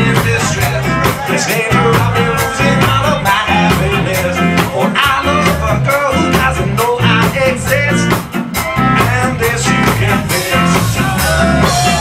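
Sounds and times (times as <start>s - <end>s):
live ska band playing: 0.0s - 12.0s
man singing lead: 0.0s - 12.0s.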